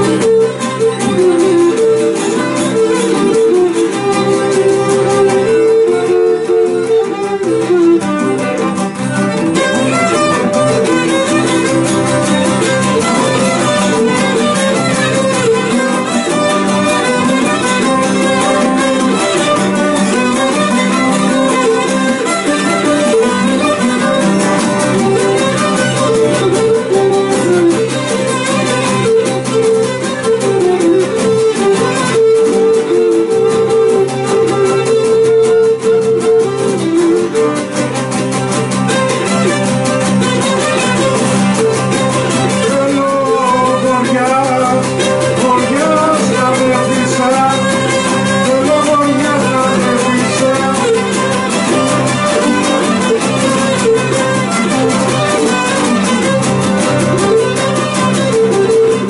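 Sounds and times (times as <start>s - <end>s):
plucked mandolin melody: 0.0s - 59.0s
strummed string accompaniment: 0.0s - 59.0s.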